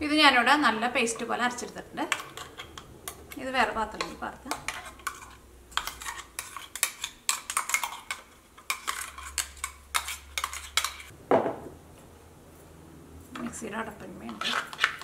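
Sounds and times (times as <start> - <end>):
metal spoon scraping in steel jar: 2.1 - 11.1, 14.3 - 15.0.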